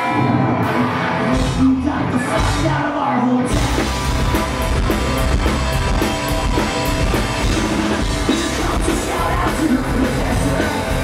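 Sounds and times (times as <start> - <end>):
bass guitar: 0.0 - 11.0
distorted electric guitars: 0.0 - 11.0
drum kit beat with cymbal hits: 3.5 - 11.0.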